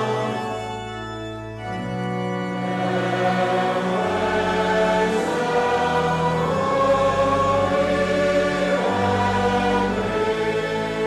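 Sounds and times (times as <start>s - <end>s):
congregation singing a psalm: 0.0s - 11.0s
organ: 0.0s - 11.0s.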